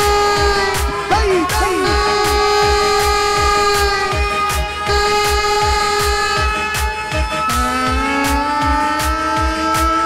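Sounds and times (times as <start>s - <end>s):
low drum beat: 0.0s - 10.0s
reed pipe melody over drone: 0.0s - 10.0s.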